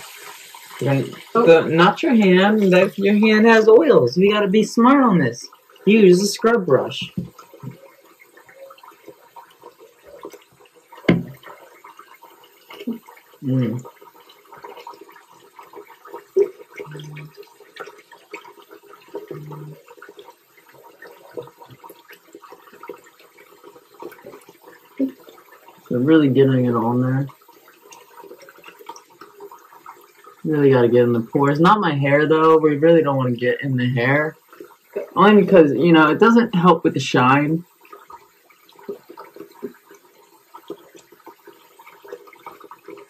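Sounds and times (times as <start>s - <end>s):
faucet running into sink: 0.0s - 43.0s
small water splashes: 0.0s - 43.0s
thump: 11.1s - 11.4s.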